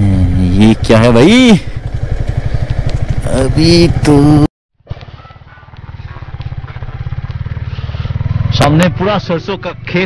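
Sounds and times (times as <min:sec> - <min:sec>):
motorcycle engine riding: 0:00.0 - 0:10.0
man's voice: 0:03.2 - 0:04.5.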